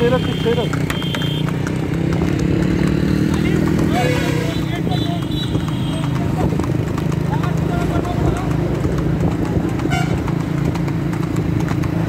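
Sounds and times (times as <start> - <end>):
horse hooves clip-clopping on asphalt: 0.0 - 12.0
traffic engine drone: 0.0 - 12.0.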